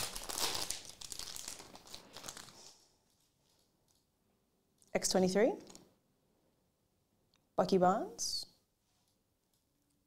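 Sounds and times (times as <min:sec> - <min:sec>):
foil wrapper crinkling and tearing: 0:00.0 - 0:04.0.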